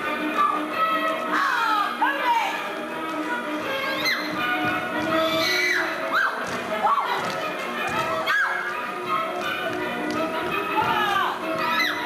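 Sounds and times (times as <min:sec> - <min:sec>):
can-can dance music: 0:00.0 - 0:12.0
shoes tapping on wooden stage: 0:03.0 - 0:12.0.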